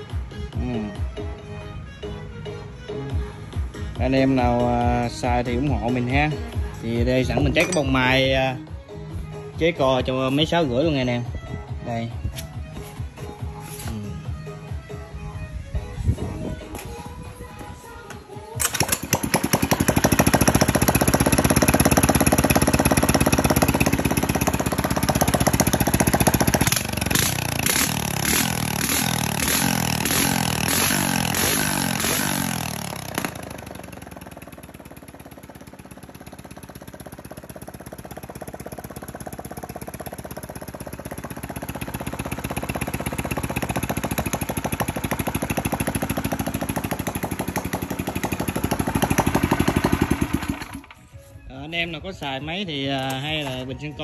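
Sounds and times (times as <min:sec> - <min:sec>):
small single-cylinder engine running: 0:18.6 - 0:51.2.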